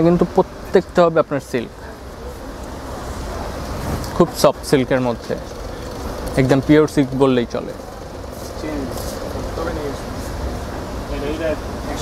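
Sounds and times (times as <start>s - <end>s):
faint background voices: 0.4s - 12.0s.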